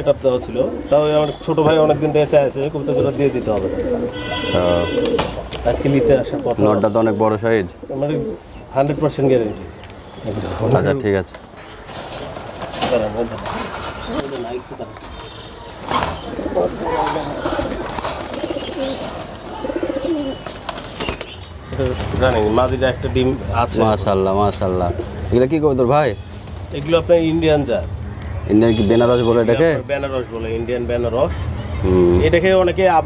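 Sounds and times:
pigeons cooing: 0.2s - 9.8s, 11.9s - 14.7s, 15.7s - 25.3s.

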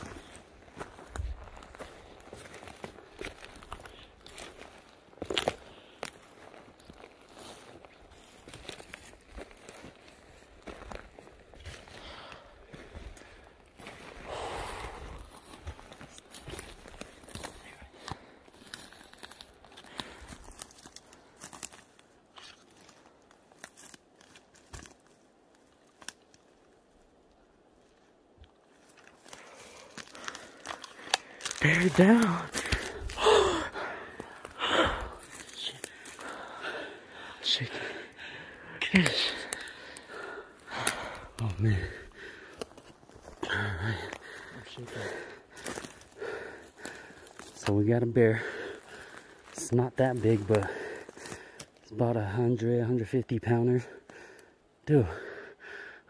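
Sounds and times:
twigs snapping: 0.0s - 13.9s, 14.8s - 27.4s, 28.4s - 47.7s, 48.5s - 49.6s, 50.2s - 51.9s
footsteps crunching on pine needles: 0.0s - 51.9s.

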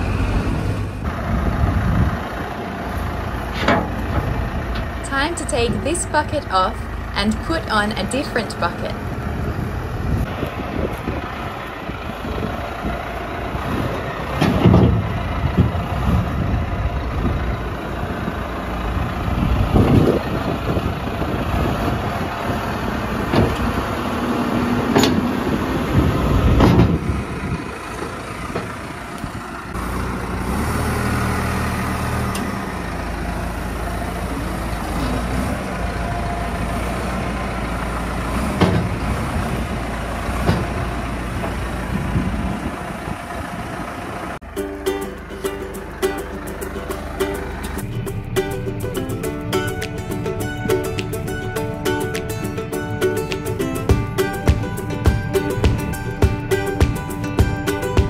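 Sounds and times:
tractor engine running: 0.0s - 58.0s
metal clanks: 3.5s - 4.9s.

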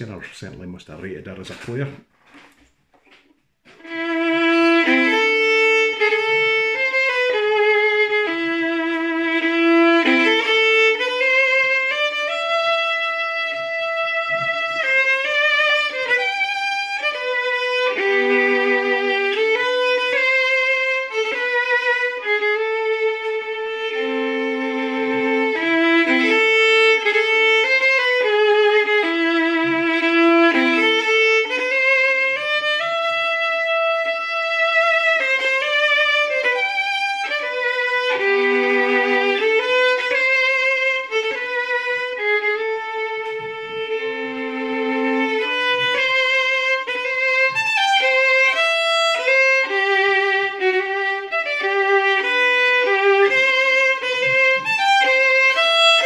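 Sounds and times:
solo fiddle playing: 3.7s - 56.0s.

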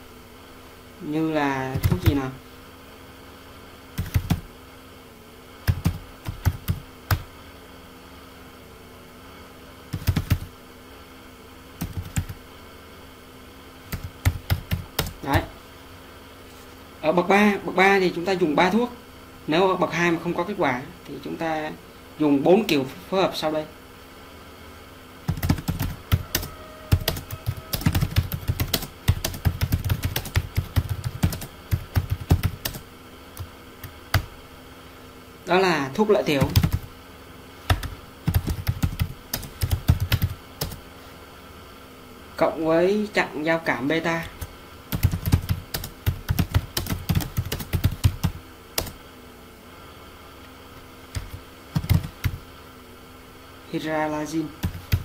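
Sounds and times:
faint steady hum: 0.0s - 55.0s
computer keyboard typing: 1.7s - 2.2s, 4.0s - 4.5s, 5.6s - 7.3s, 9.9s - 10.5s, 11.8s - 12.4s, 13.9s - 15.5s, 25.3s - 32.8s, 33.4s - 34.3s, 36.3s - 36.9s, 37.7s - 40.8s, 44.2s - 49.0s, 51.1s - 52.4s, 54.6s - 55.0s.

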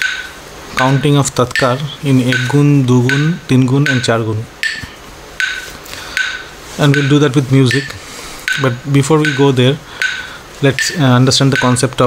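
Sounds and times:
metronome ticking: 0.0s - 12.0s.

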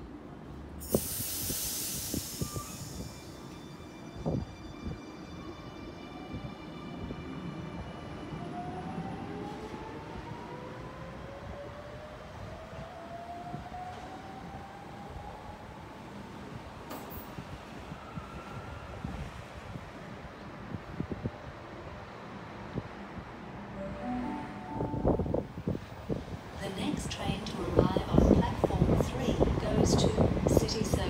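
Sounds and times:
low train rumble: 0.0s - 31.0s
air hiss: 0.8s - 3.2s.

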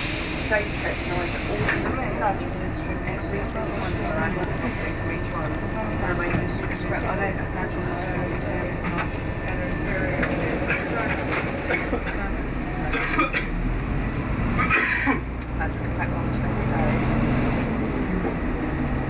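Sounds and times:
bus engine and road rumble: 0.0s - 19.0s.

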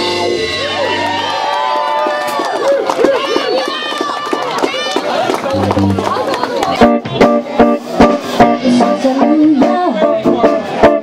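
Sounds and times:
crowd cheering and whooping: 0.0s - 6.8s.

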